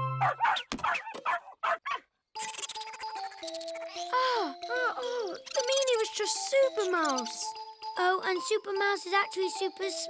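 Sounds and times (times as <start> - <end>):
cartoon dog barking and yipping: 0.2 - 4.0.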